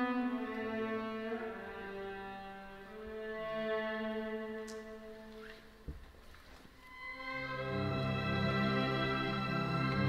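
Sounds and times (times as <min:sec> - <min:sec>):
string orchestra held notes: 0:00.0 - 0:05.6, 0:06.8 - 0:10.0.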